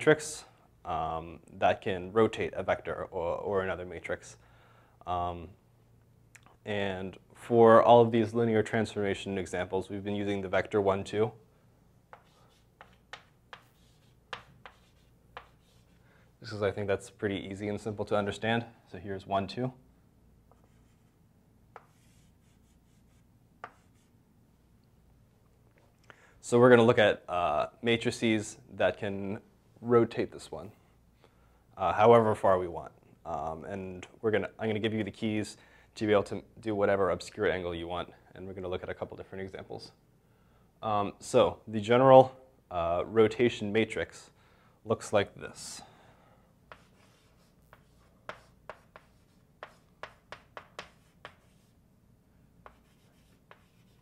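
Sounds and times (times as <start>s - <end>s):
chalk scratch: 12.1s - 16.0s, 20.5s - 21.2s, 21.8s - 24.1s, 46.7s - 51.8s, 52.6s - 54.0s
chalk tapping on chalkboard: 12.1s - 16.0s, 21.7s - 24.1s, 46.7s - 51.7s, 52.6s - 54.0s.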